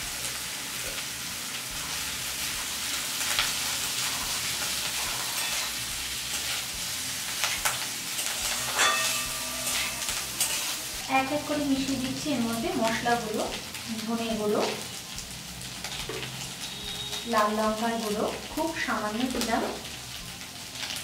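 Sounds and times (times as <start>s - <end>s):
oil sizzling in a wok: 0.0s - 21.0s
metal spatula scraping a pan: 3.3s - 6.7s, 7.4s - 11.0s.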